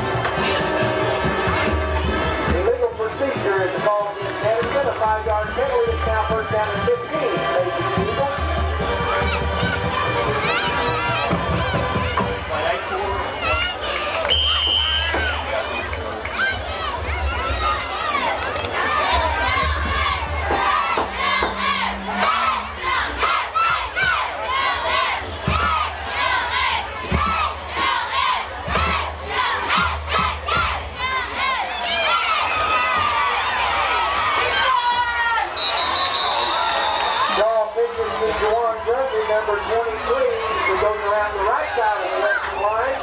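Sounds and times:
crowd cheering and shouting: 0.0s - 43.0s.

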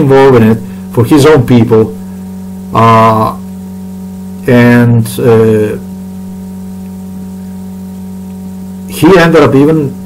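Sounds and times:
electrical mains hum: 0.0s - 10.0s
faint hiss: 0.0s - 10.0s.

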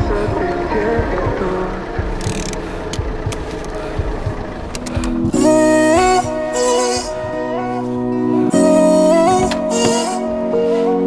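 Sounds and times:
car engine running: 0.0s - 10.9s
soft background music: 0.0s - 11.0s
sharp clicks: 2.2s - 3.8s, 4.7s - 5.4s.

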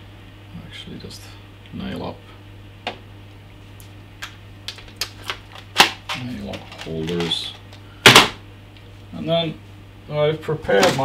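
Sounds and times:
plastic packet clicks and crinkles: 4.2s - 7.4s.

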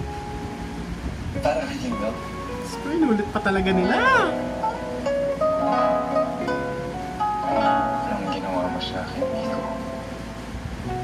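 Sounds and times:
plucked acoustic guitar: 0.0s - 11.0s.

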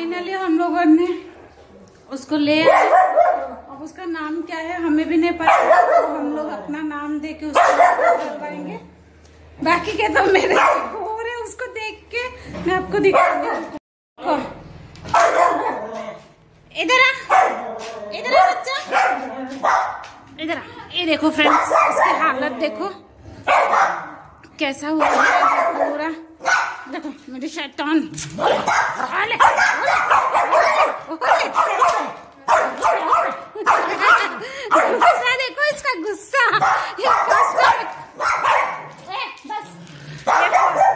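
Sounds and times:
small dog barking: 2.6s - 3.6s, 5.5s - 6.3s, 7.6s - 8.4s, 15.1s - 15.9s, 17.3s - 17.6s, 18.4s - 20.0s, 21.4s - 22.2s, 23.5s - 24.2s, 25.0s - 26.9s, 28.4s - 35.3s, 36.6s - 38.9s, 40.3s - 40.9s.

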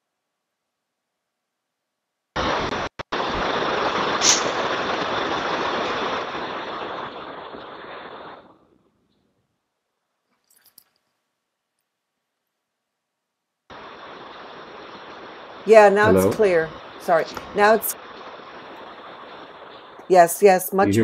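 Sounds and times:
microphone static hiss: 0.0s - 21.0s.

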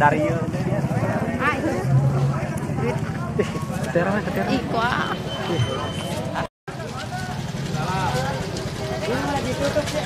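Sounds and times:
motor scooter engine passing: 0.0s - 10.0s
people talking: 0.0s - 10.0s.

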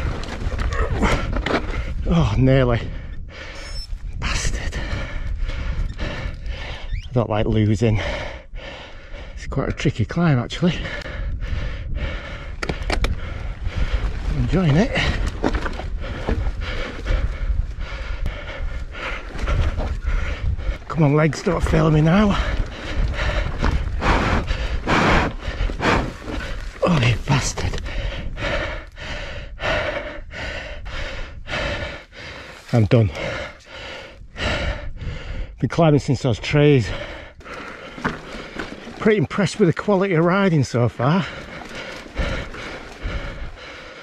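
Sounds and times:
person breathing hard: 2.8s - 3.8s, 4.7s - 7.0s, 8.0s - 9.4s, 10.8s - 20.9s, 22.2s - 35.6s, 36.8s - 39.0s, 40.7s - 44.0s.

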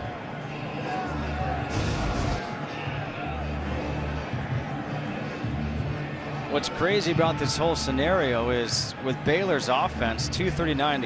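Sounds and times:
crowd hubbub: 0.0s - 7.4s
stadium music with heavy bass: 0.0s - 11.0s.

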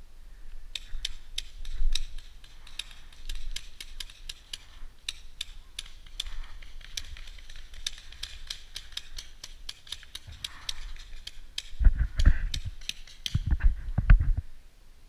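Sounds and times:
bumping and rustling on camera: 13.3s - 14.5s.

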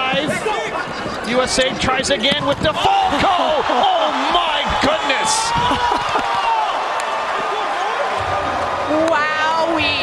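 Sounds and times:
arena crowd cheering and shouting: 0.0s - 10.0s.

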